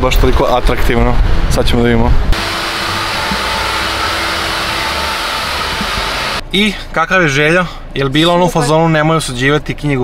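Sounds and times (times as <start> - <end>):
hair dryer blowing: 2.4 - 6.4.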